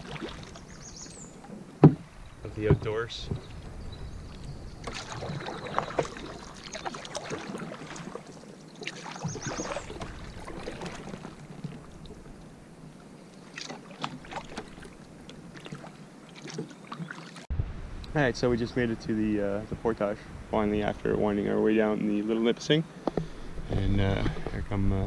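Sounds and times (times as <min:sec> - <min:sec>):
paddle splashing in water: 0:00.0 - 0:17.5.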